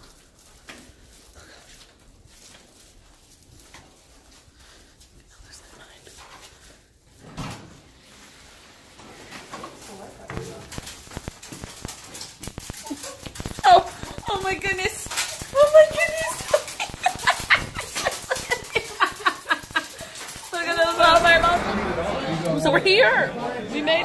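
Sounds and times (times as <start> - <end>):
restaurant chatter: 9.4 - 24.0.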